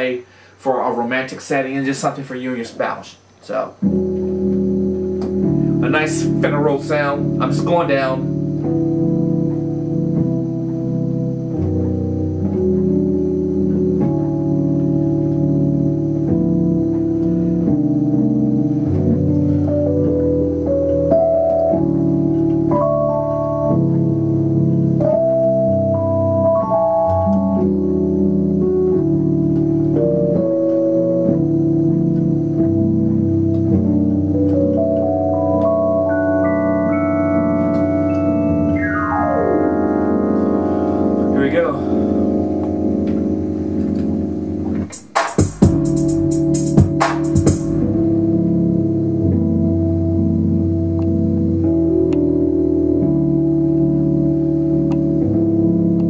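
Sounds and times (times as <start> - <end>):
electronic keyboard chords: 0.0 - 56.0.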